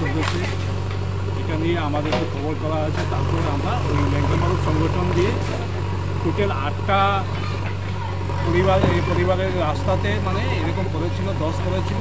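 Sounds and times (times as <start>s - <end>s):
low engine hum: 0.0s - 12.0s
man speaking: 6.2s - 7.4s, 8.4s - 12.0s.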